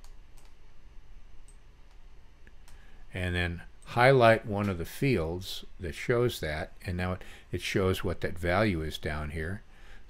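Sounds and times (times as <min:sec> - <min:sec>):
computer mouse clicks: 0:00.0 - 0:00.6
low room hum: 0:00.0 - 0:10.0.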